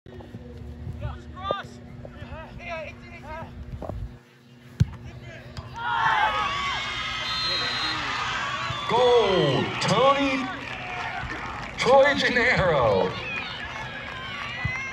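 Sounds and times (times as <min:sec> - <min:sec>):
players shouting: 0:05.2 - 0:14.9
crowd cheering and yelling: 0:05.7 - 0:14.9.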